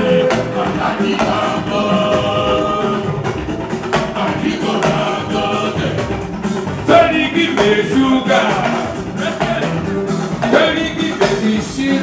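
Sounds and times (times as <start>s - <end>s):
live band music: 0.0s - 12.0s
voices singing together: 0.0s - 12.0s.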